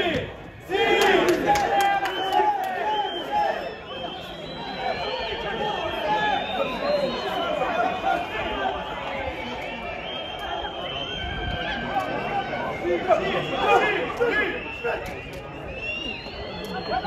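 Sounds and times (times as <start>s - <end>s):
overlapping shouts and chatter: 0.0s - 17.0s.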